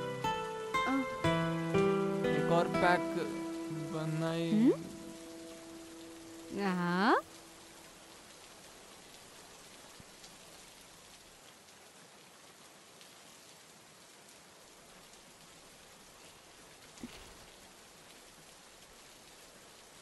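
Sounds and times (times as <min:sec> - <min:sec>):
faint rain falling: 0:00.0 - 0:20.0.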